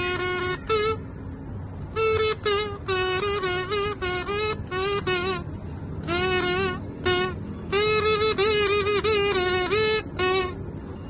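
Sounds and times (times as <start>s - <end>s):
brass mouthpiece buzzing: 0.0s - 1.2s, 1.8s - 11.0s.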